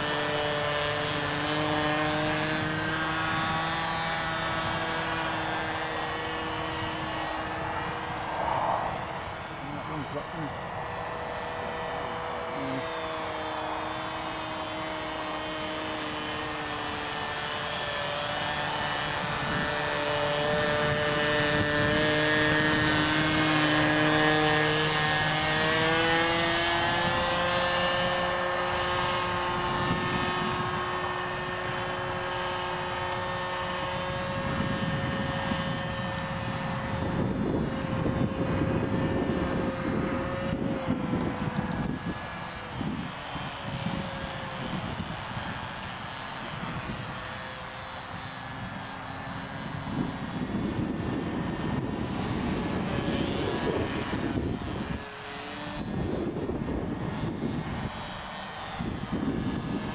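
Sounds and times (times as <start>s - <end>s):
model aircraft motor droning: 0.0s - 59.9s
wind buffeting microphone: 0.0s - 59.9s.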